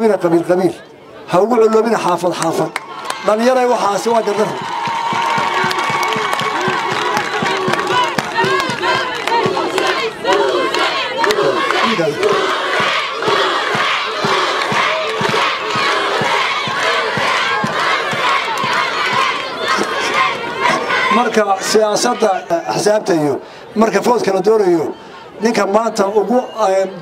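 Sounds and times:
crowd cheering and shouting: 2.4 - 27.0.

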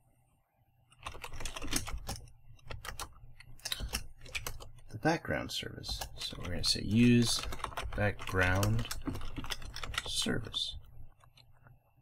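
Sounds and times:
computer keyboard typing: 0.9 - 4.9, 5.8 - 11.7.

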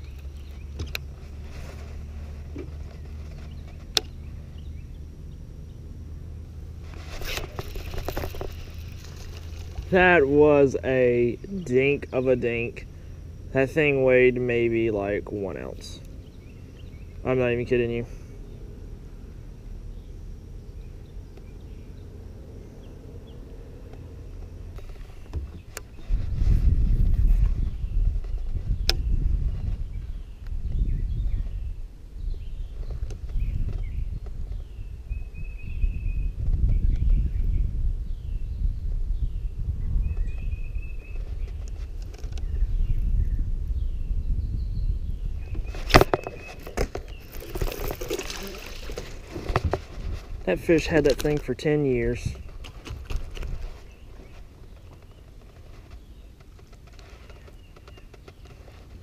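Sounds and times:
small bird chirping: 2.7 - 5.9, 27.6 - 58.8
wind buffeting microphone: 25.2 - 58.4.

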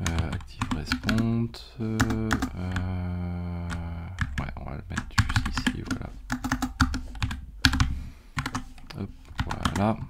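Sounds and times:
typing on computer keyboard: 0.0 - 1.3, 2.0 - 3.0, 3.6 - 10.0.

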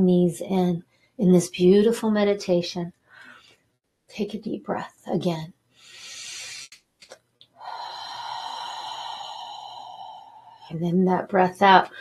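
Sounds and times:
woman breathing deeply: 3.1 - 3.6, 5.8 - 6.8, 7.5 - 10.8.

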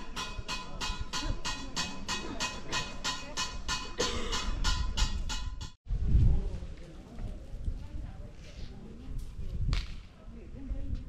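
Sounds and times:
street voices: 0.0 - 11.0.

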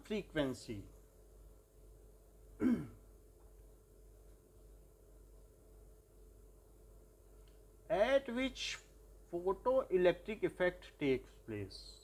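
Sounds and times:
person clearing throat: 2.6 - 3.0.

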